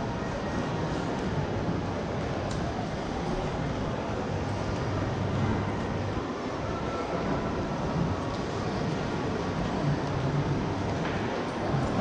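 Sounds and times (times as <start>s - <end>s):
shopping mall ambience: 0.0s - 12.0s.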